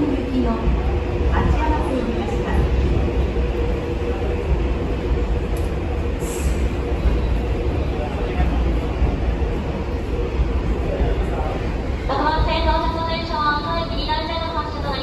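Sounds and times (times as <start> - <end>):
people talking: 0.0 - 3.1, 10.8 - 15.0
train rumbling in tunnel: 0.0 - 15.0.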